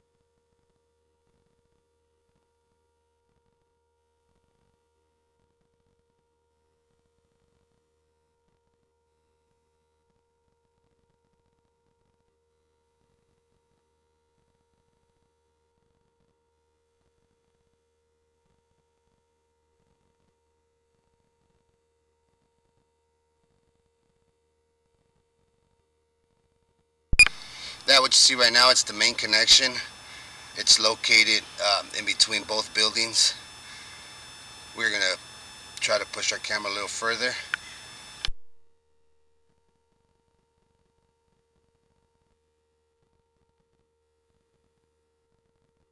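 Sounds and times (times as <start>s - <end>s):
faint steady tone: 0.0s - 38.7s
sharp click: 27.2s - 27.5s, 37.5s - 38.6s
faint electrical tone: 27.2s - 38.7s
steady hiss: 27.3s - 38.3s.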